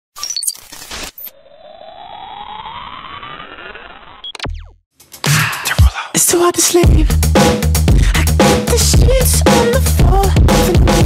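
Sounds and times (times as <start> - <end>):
crackling glitch bursts: 0.2 - 4.8
rising synth sweep: 1.3 - 4.7.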